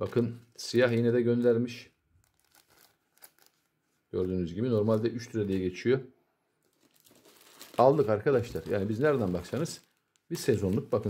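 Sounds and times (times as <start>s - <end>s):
plastic packets crinkling: 0.0s - 5.8s, 6.6s - 11.0s.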